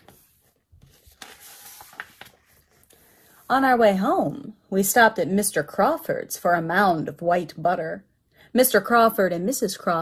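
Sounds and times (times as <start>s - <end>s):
book pages rustling: 0.0s - 3.4s.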